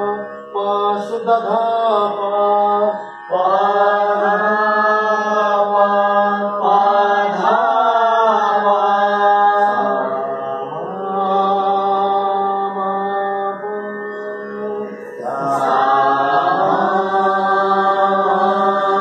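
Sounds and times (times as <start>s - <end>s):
person singing long held notes: 0.0s - 19.0s
steady low drone: 9.5s - 19.0s.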